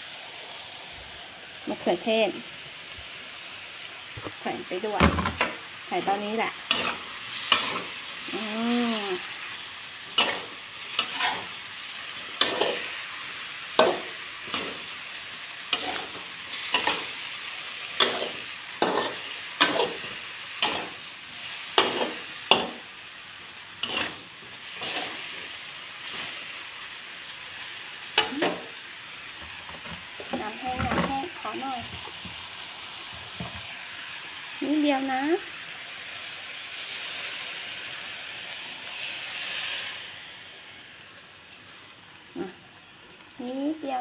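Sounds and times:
stir-fry sizzling in oil: 0.0s - 44.0s
metal spatula scraping a wok: 6.6s - 8.1s, 10.0s - 15.0s, 15.6s - 22.9s, 23.8s - 26.4s.

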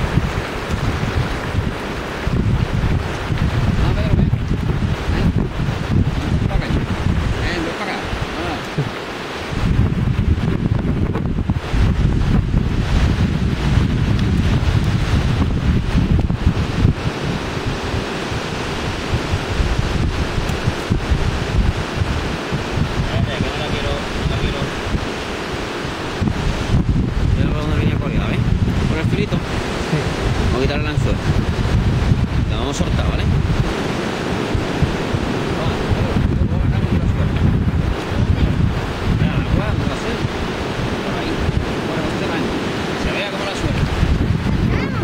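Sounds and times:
small waves on sandy beach: 0.0s - 45.0s
wind buffeting microphone: 0.0s - 45.0s.

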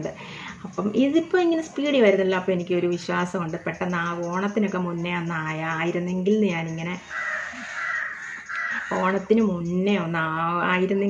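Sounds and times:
harsh rasping bird call: 7.0s - 9.2s.

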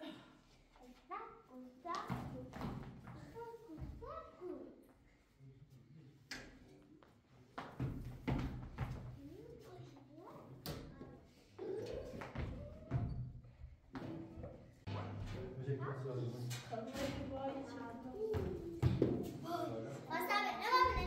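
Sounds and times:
children's voices: 0.0s - 5.0s, 9.2s - 13.1s, 16.8s - 21.0s.

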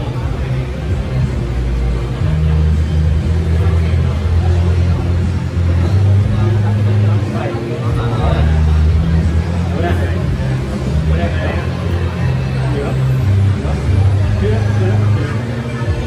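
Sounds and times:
bass-heavy music: 0.0s - 16.0s
indistinct voices: 0.0s - 16.0s.

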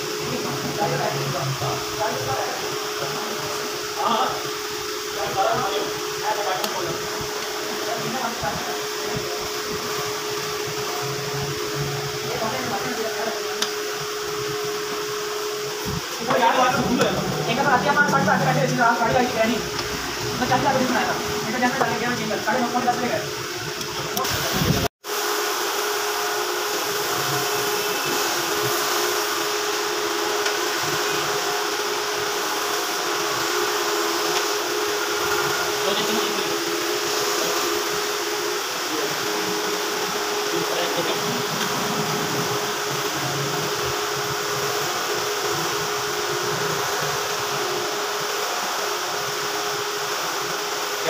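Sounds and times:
mechanical whir with hum: 0.0s - 51.0s.

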